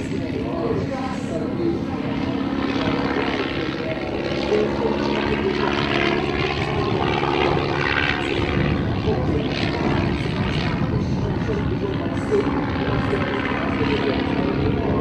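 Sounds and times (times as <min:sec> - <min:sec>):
biplane engine and propeller: 0:00.0 - 0:15.0.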